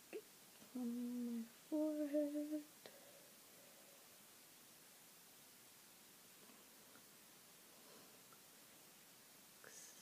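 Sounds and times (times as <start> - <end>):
woman humming: 0.1 - 2.7.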